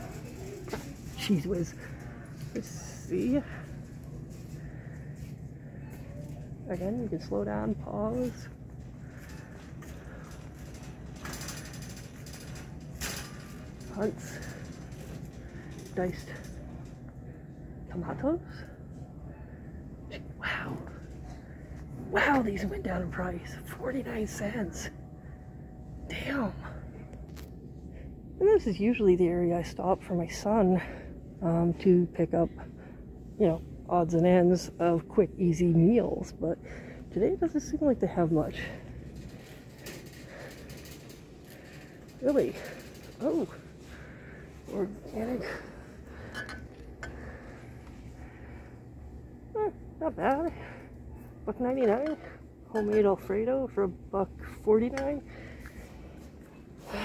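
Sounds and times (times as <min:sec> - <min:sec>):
low steady hum: 0:00.0 - 0:57.0
fast mechanical rattle: 0:09.0 - 0:16.5.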